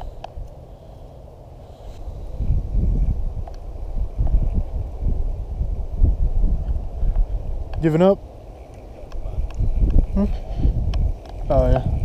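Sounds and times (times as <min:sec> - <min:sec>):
wind buffeting microphone: 0:01.8 - 0:12.0.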